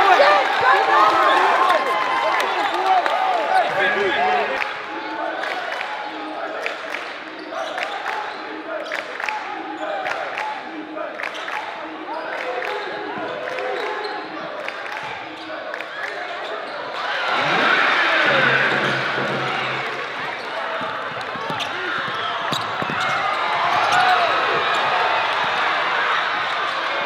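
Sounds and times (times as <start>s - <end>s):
players and spectators shouting: 0.0s - 11.2s, 12.0s - 27.0s.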